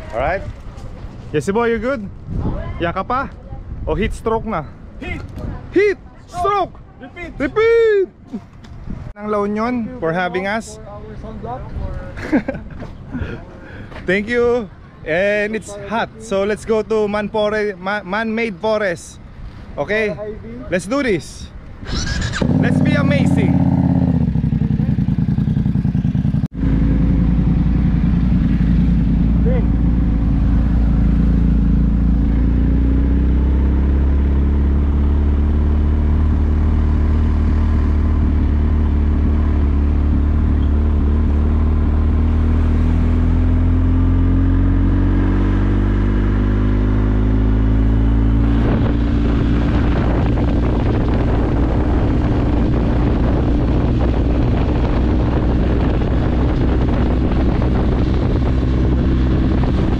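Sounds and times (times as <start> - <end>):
wind noise on microphone: 0.0 - 5.7, 8.7 - 9.2, 21.7 - 59.9
motorcycle engine riding: 21.8 - 59.9.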